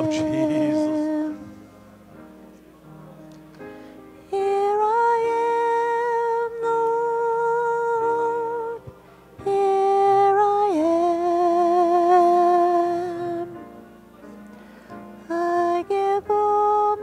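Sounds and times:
woman singing long notes: 0.0s - 1.6s, 4.3s - 13.6s, 15.2s - 17.0s.

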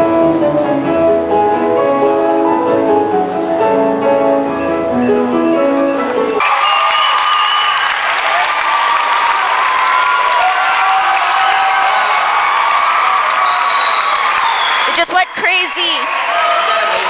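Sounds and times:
audience clapping and cheering: 6.0s - 17.0s.

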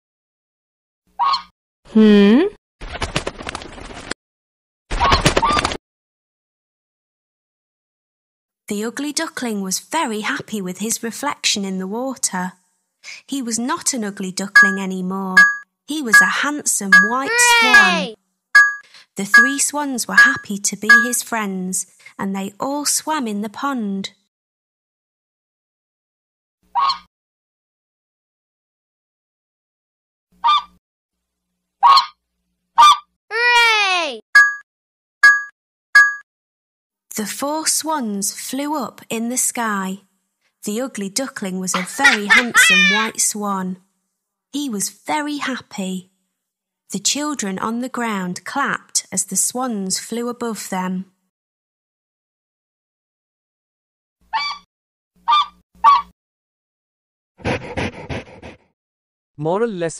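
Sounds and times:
cartoon waterfowl calls: 1.2s - 1.5s, 26.7s - 27.1s, 30.4s - 30.8s, 31.8s - 32.2s, 32.8s - 33.1s, 41.8s - 43.1s, 54.3s - 56.1s.

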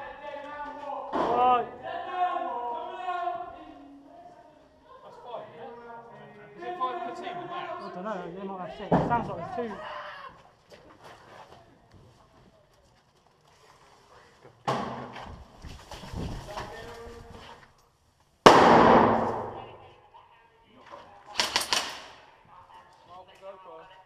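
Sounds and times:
airsoft gunfire cracks: 18.5s - 19.6s, 21.4s - 22.2s
sudden bangs: 18.5s - 19.8s.

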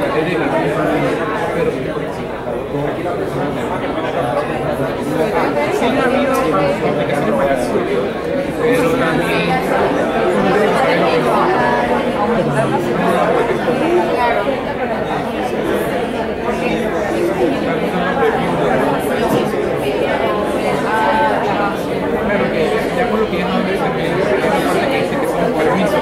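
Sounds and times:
many people chattering: 0.0s - 26.0s.

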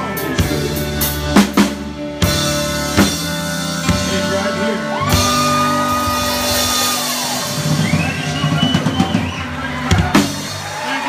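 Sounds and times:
country band playing: 0.0s - 11.0s.

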